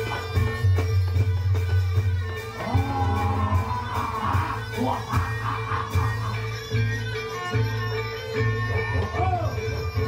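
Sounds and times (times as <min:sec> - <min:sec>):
loud repeating bass notes: 0:00.0 - 0:07.6.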